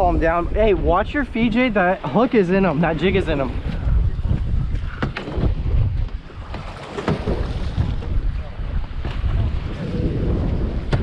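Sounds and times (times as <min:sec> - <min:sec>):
water washing against hull: 0:00.0 - 0:11.0
wind buffeting microphone: 0:00.0 - 0:11.0.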